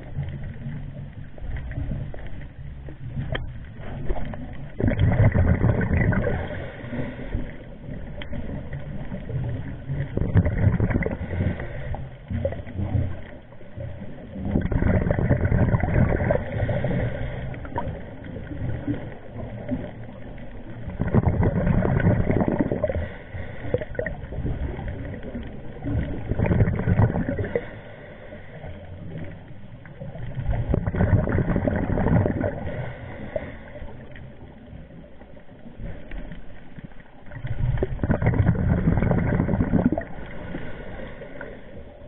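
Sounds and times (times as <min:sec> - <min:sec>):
underwater breath bubbles gurgling: 0:00.0 - 0:42.0
underwater regulator breathing bubbles: 0:20.8 - 0:25.2, 0:25.8 - 0:27.8, 0:30.4 - 0:34.0, 0:37.4 - 0:41.6.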